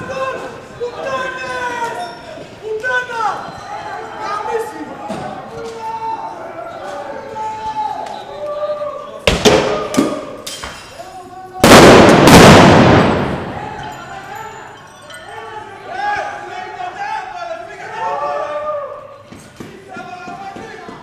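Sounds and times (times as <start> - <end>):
loud explosive blast: 11.6 - 13.7
sharp bangs: 11.6 - 14.0
people shouting: 13.0 - 14.8.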